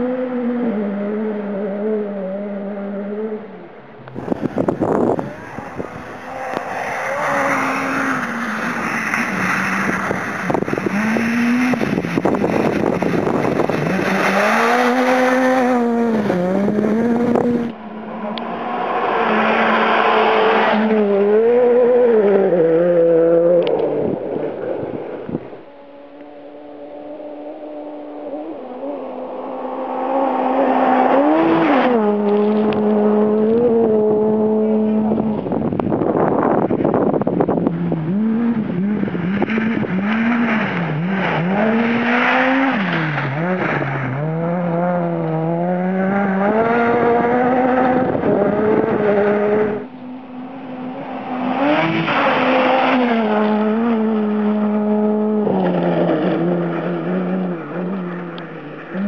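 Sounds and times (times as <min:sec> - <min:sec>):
rally car engine revving: 0:00.0 - 0:59.0
loud rush of noise: 0:04.1 - 0:21.6.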